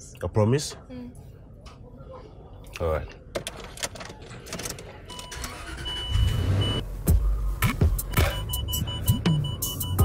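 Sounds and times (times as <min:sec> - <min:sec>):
car engine starting and running: 0:05.1 - 0:09.9.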